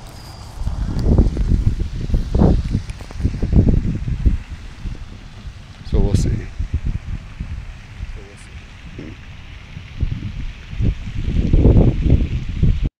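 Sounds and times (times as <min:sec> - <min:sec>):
wind rumbling on microphone: 0:00.0 - 0:12.9.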